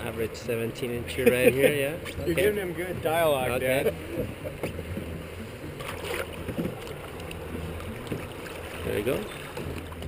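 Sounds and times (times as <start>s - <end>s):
river water lapping: 0.0s - 10.0s
small water splashes: 4.5s - 10.0s.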